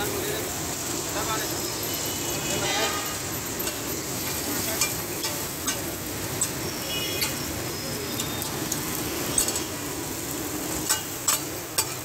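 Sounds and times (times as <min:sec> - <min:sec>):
food sizzling on a flat iron pan: 0:00.0 - 0:12.0.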